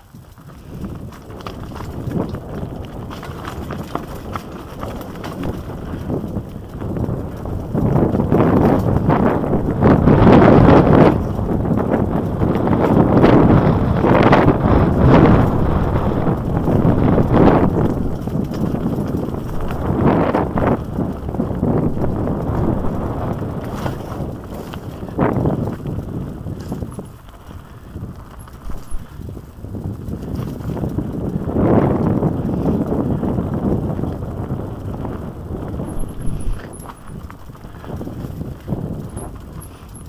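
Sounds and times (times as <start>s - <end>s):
bike rattling and knocking: 0.0s - 40.0s
wind rushing over microphone: 0.0s - 40.0s.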